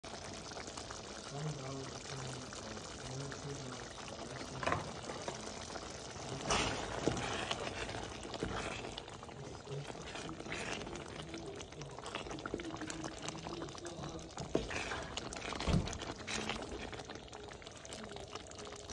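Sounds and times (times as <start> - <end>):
thick stew bubbling: 0.0 - 18.9
wooden spoon scraping metal pot: 4.6 - 17.3.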